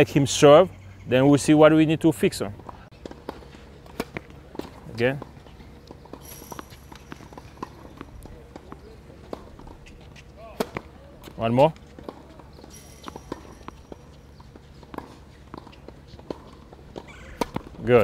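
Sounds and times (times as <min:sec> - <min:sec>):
racket striking ball: 0:03.0 - 0:05.3, 0:05.9 - 0:17.8
tennis ball bouncing on hard court: 0:05.9 - 0:17.8.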